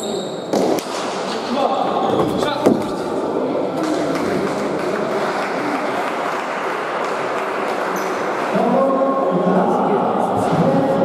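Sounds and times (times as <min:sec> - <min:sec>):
crowd voices: 0:00.9 - 0:11.0.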